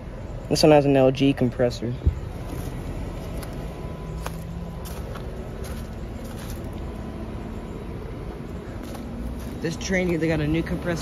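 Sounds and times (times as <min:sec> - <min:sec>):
air conditioner humming: 0:00.0 - 0:11.0.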